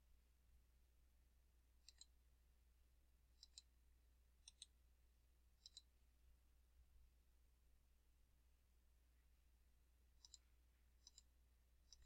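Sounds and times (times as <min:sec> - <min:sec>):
computer mouse double-clicks: 0:01.8 - 0:02.1, 0:03.4 - 0:03.7, 0:05.6 - 0:05.9, 0:10.2 - 0:10.4, 0:11.0 - 0:11.3.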